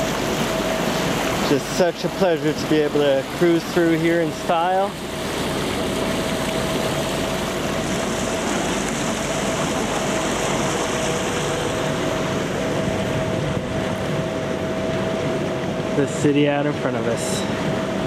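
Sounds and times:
water rushing from boat hull: 0.0 - 18.0.

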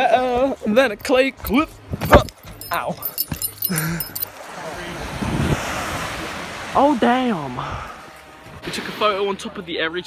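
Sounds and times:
wind: 0.0 - 10.0
surf: 4.3 - 10.0.

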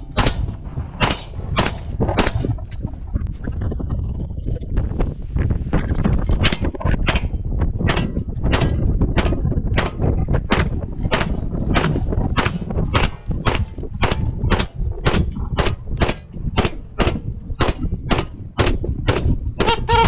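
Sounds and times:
gunshots: 0.0 - 2.6, 6.4 - 20.0
low rumble: 0.0 - 20.0.

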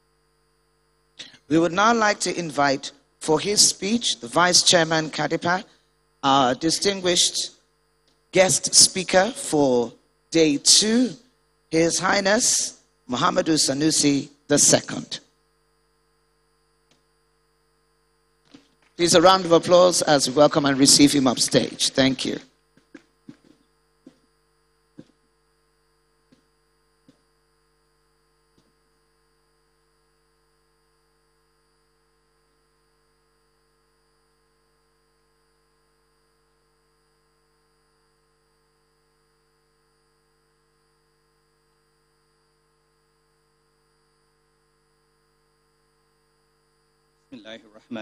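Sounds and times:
faint electrical mains hum: 0.0 - 48.0.

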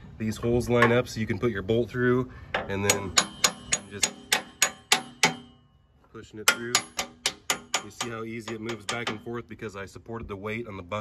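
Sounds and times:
hammer striking metal pin: 2.5 - 5.7, 6.4 - 9.4.

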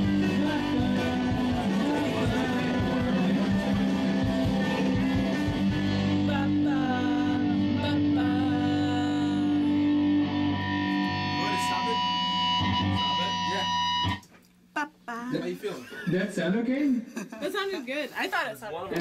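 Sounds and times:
person singing: 0.0 - 10.1
rock song with electric guitar: 0.0 - 14.2.

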